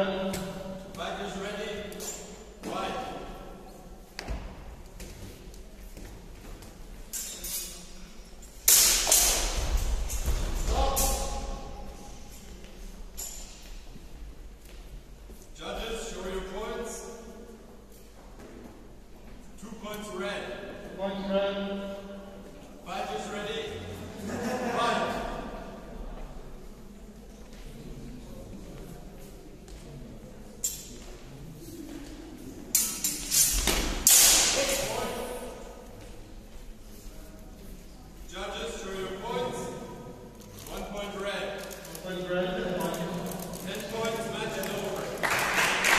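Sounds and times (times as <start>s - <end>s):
steel swords clashing: 8.6s - 11.5s, 32.8s - 34.9s.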